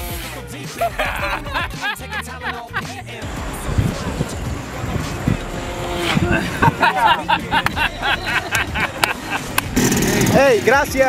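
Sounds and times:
small motorcycle engines running: 3.2 - 11.0
wind rumbling on microphone: 3.3 - 7.0.

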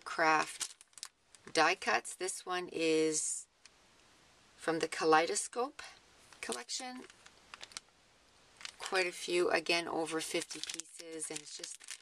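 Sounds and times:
plastic packet crinkling: 0.4 - 1.2, 6.5 - 7.9, 8.6 - 9.2, 10.1 - 12.0
person speaking: 4.6 - 7.2, 8.7 - 12.0.

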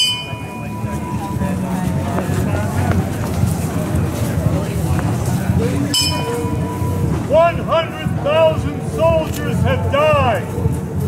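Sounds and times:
ringing tone: 0.0 - 1.3, 6.0 - 7.0
faint crowd voices: 0.0 - 11.0
low traffic rumble: 0.0 - 11.0.

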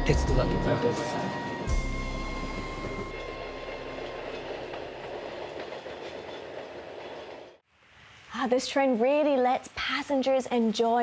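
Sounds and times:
train wheels rumbling on rails: 0.0 - 7.6.

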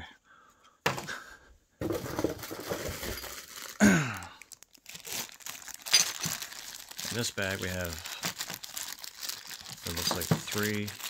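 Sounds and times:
plastic bag crinkling: 1.8 - 11.0.

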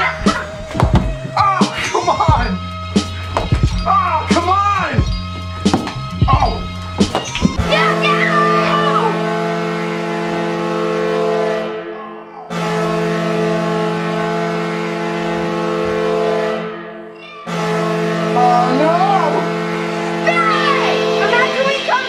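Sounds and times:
kids shouting excitedly: 7.6 - 9.2, 20.2 - 22.0
arena goal horn blasts: 7.6 - 22.0.

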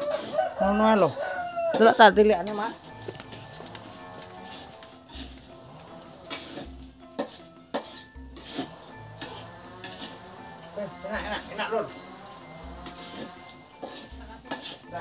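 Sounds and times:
background music with low beat: 0.0 - 15.0
light sizzle: 0.0 - 15.0
metal spatula scraping wok: 0.0 - 15.0.

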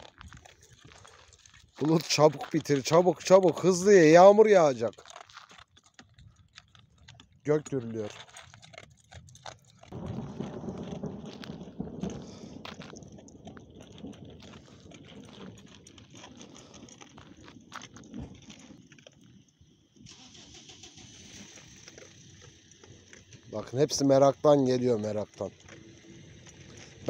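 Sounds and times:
dog chewing dry kibble: 0.0 - 20.1, 21.2 - 27.0
distant thunder rumbling: 10.0 - 15.8.

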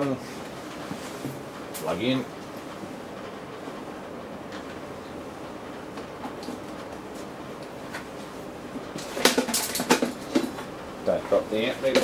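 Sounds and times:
steady background hum: 0.0 - 12.0
loud clattering knocks: 9.1 - 10.7.

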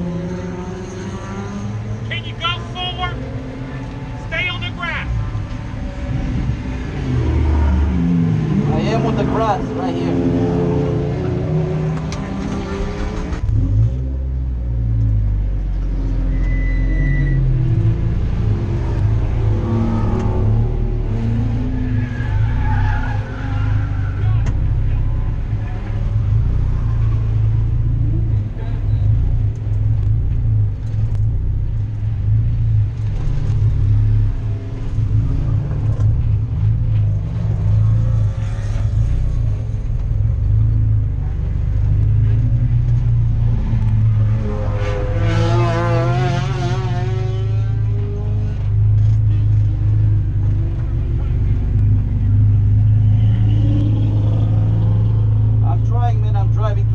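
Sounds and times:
race car engine revving: 0.0 - 56.9.

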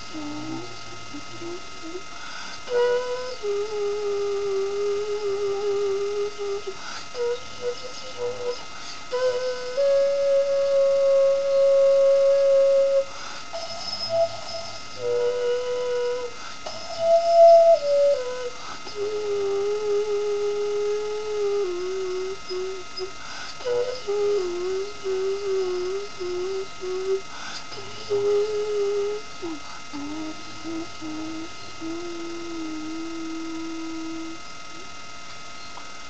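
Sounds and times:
clay vessel flute playing: 0.0 - 34.9.

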